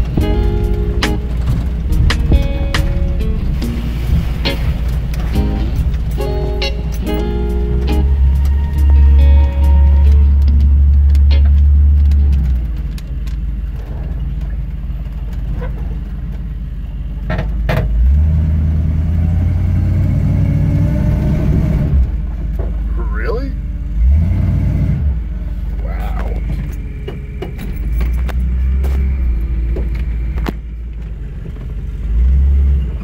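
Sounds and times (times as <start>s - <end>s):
engine low rumble from inside cab: 0.0s - 33.0s.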